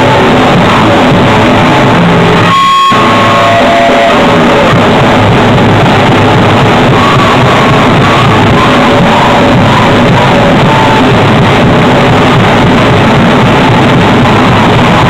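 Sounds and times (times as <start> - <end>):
distorted electric guitar: 0.0 - 15.0
drum kit: 0.0 - 15.0.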